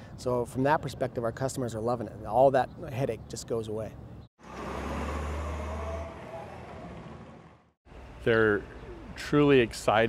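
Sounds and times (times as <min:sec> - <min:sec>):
vehicle engine humming: 0:04.4 - 0:09.2.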